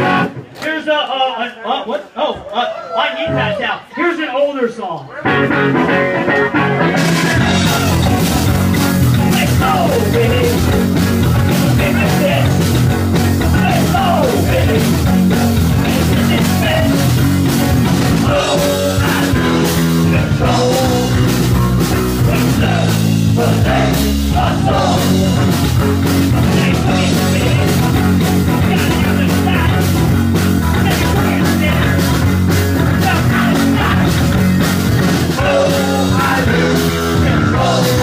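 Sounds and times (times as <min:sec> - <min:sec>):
punk rock band playing live: 0:00.0 - 0:00.6, 0:05.2 - 0:38.0.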